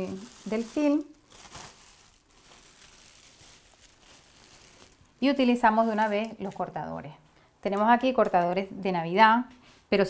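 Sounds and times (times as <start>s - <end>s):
plastic cling film crinkling: 0.0s - 6.9s.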